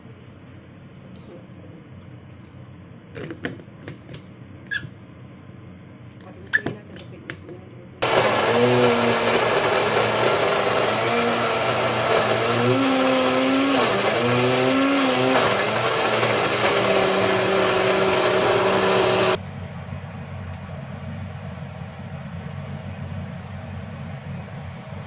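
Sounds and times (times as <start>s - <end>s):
blender grinding paste: 8.0s - 19.4s.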